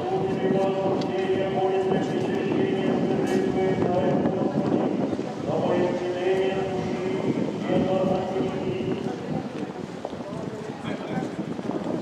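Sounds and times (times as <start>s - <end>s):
voices chanting church singing: 0.0s - 9.0s.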